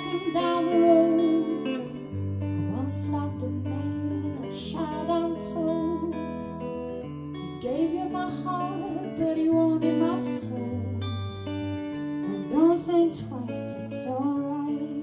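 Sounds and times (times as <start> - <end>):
woman singing into a microphone: 0.0 - 6.7, 7.4 - 15.0
electric guitar: 0.0 - 15.0.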